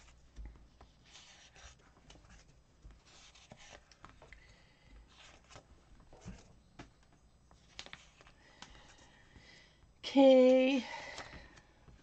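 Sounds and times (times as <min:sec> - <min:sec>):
paper rustling and scratching: 0:00.8 - 0:04.3, 0:05.1 - 0:06.5.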